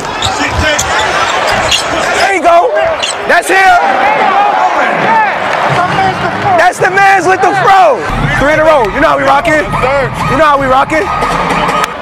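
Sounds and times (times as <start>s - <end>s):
shoe squeaks: 0.0s - 2.2s, 2.8s - 3.3s
arena noise: 0.0s - 12.0s
players shouting: 0.0s - 12.0s.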